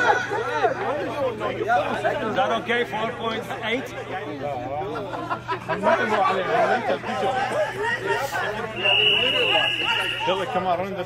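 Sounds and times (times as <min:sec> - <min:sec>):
men talking: 0:00.0 - 0:11.0
referee's whistle: 0:08.7 - 0:10.6.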